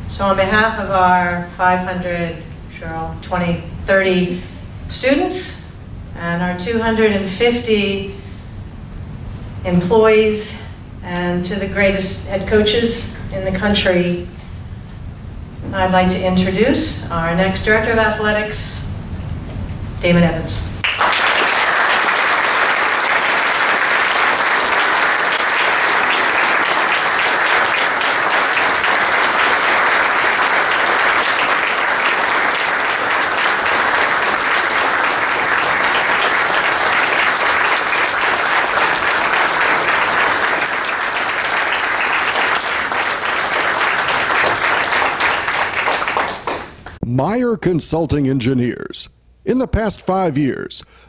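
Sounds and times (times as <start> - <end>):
people applauding: 20.8 - 47.0.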